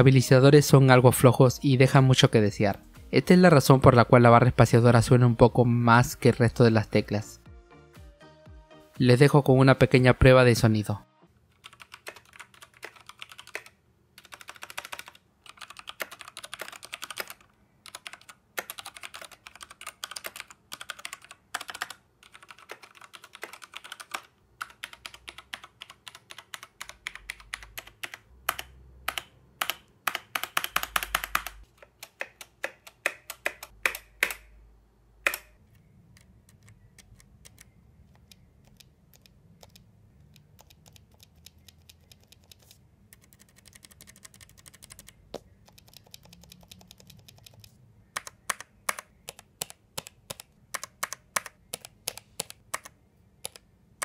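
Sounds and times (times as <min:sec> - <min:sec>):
mechanical keyboard typing: 0:11.6 - 0:34.5, 0:35.2 - 0:53.7.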